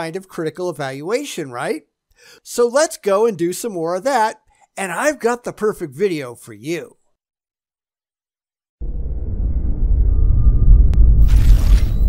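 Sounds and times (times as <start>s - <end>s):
deep low rumble: 8.8s - 12.0s.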